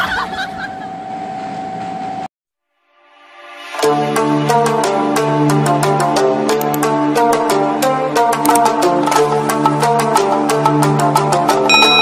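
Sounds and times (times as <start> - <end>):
music: 2.6 - 12.0.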